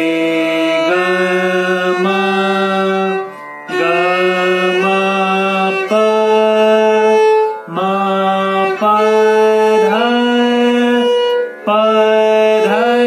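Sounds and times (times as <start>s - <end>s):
violin playing slow exercise: 0.0s - 13.0s.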